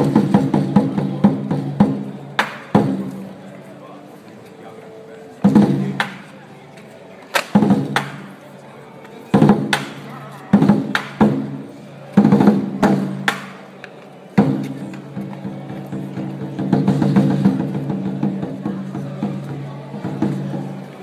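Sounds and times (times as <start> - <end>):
large drum: 0.0 - 3.2, 5.4 - 6.2, 7.5 - 8.2, 9.3 - 13.4, 14.4 - 20.8.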